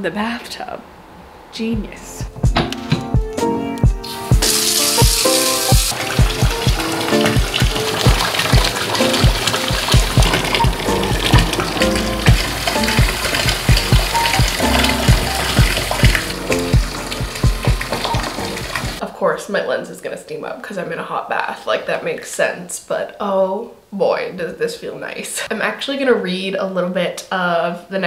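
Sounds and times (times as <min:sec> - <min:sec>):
background music with beat: 0:02.2 - 0:19.0
water gushing into tub: 0:04.1 - 0:19.0.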